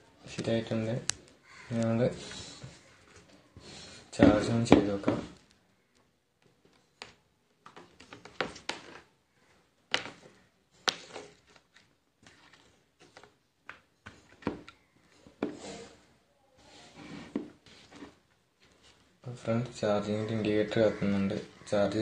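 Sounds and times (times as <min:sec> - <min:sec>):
rustling: 0:07.6 - 0:19.3.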